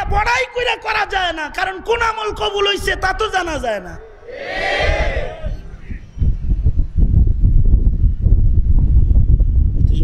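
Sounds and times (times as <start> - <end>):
wind buffeting microphone: 4.3 - 10.0.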